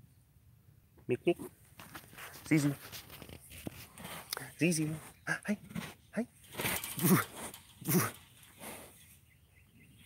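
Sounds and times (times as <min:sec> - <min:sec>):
tiger chuffing: 0:05.2 - 0:09.1.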